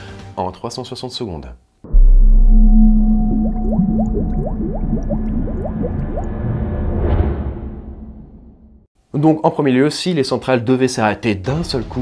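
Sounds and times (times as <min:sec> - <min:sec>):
deep steady drone: 0:01.9 - 0:06.6
rising underwater bubble bloops: 0:01.9 - 0:06.6.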